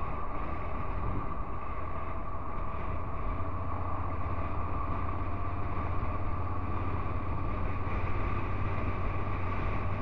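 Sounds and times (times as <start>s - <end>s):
motorcycle engine cruising: 0.0s - 10.0s
wind and road noise: 0.0s - 10.0s.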